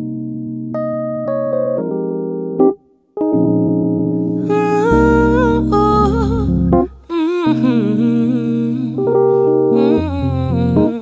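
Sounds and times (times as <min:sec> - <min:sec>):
electric piano chords: 0:00.0 - 0:11.0
woman humming: 0:04.4 - 0:11.0.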